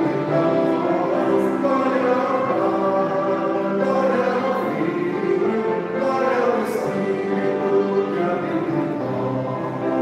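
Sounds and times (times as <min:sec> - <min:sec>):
congregation singing a hymn: 0:00.0 - 0:10.0.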